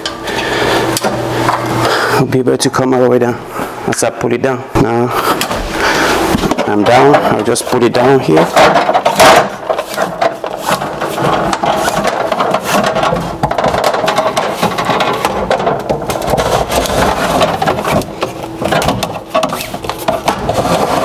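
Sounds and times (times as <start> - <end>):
cable scraping and rattling on wood: 6.2 - 21.0.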